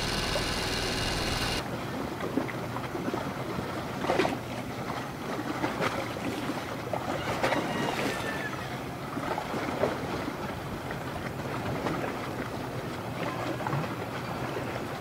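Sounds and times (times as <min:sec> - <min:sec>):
river water splashing: 0:00.0 - 0:15.0.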